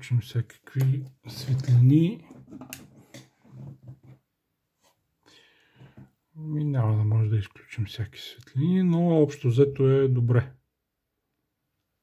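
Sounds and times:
faint rustling scrapes: 1.4s - 4.2s.

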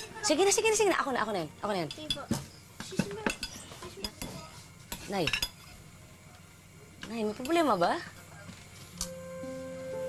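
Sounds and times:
plates and cutlery clinking: 1.8s - 5.8s.

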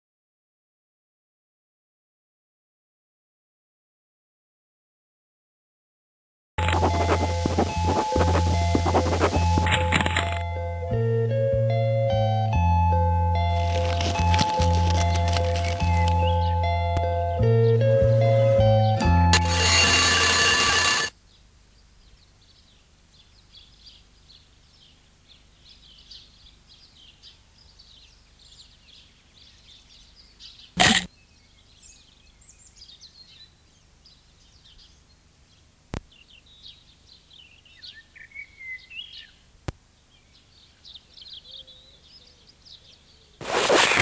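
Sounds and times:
birds chirping: 13.7s - 43.5s
alarm chiming ring: 18.3s - 21.1s.

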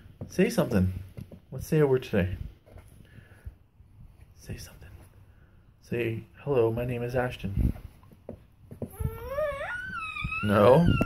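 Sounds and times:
baby whining: 8.8s - 11.0s.

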